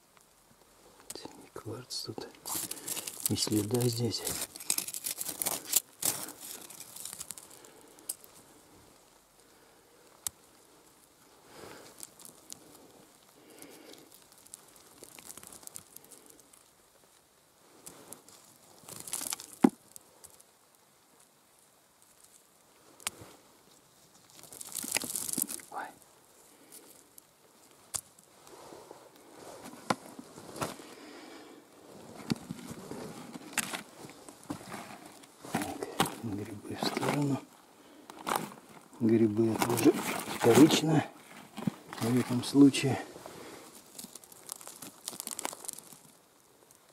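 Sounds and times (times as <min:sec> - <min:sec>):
grit and stones trickling down: 0:01.0 - 0:30.0, 0:30.6 - 0:46.9.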